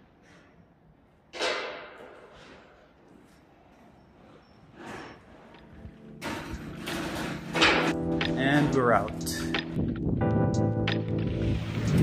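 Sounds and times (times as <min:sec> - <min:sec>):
music: 0:05.7 - 0:12.0.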